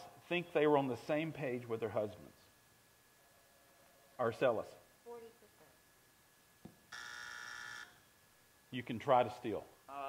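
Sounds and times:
electronic wrong-answer buzzer: 6.9 - 8.0.

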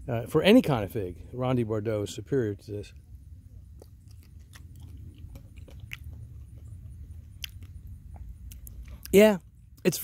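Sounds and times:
low steady rumble: 0.0 - 10.0
person chewing: 3.6 - 9.2.

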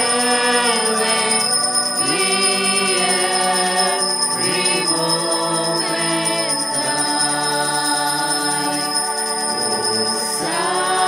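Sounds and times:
altar bells ringing: 0.0 - 11.0
hymn singing: 0.0 - 11.0
music: 0.0 - 11.0.

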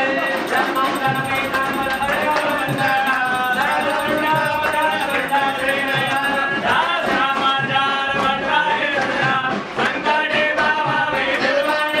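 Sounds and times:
percussion strokes: 0.0 - 7.8, 11.4 - 12.0
devotional singing with music: 0.0 - 12.0.

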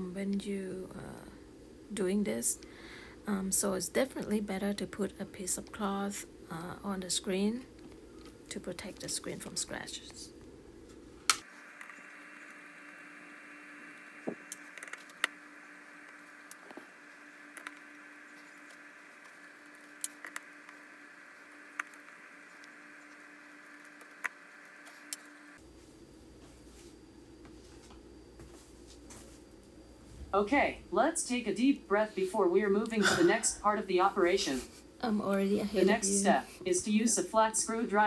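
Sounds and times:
faint hiss and hum: 0.0 - 38.0.

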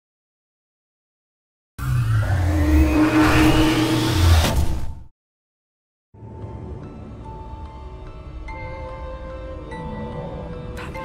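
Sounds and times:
whoosh rising in pitch: 1.8 - 4.9.

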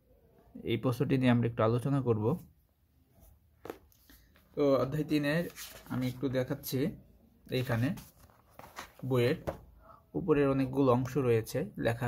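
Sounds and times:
man speaking: 0.6 - 2.5, 4.6 - 8.1.

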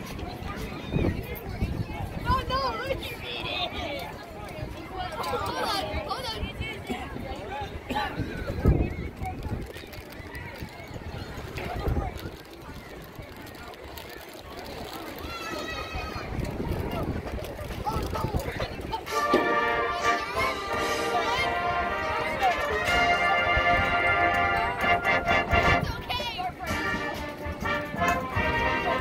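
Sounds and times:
people talking: 0.0 - 29.0
marching band sustained chord: 19.1 - 25.8, 26.6 - 29.0.

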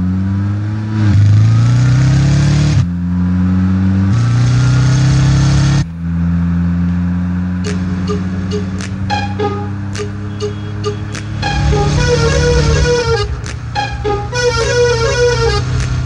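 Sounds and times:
vehicle engine revving: 0.0 - 16.0.

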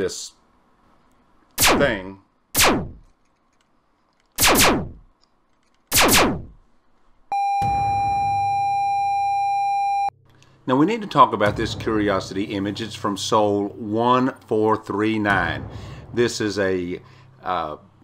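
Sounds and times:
ray gun zaps: 1.6 - 3.1, 4.4 - 5.1, 5.9 - 6.6.

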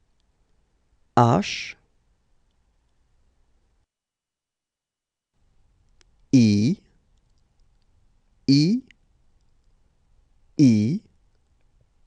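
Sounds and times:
person saying a letter: 1.2 - 1.8, 6.4 - 6.8, 8.5 - 8.9, 10.6 - 11.1.

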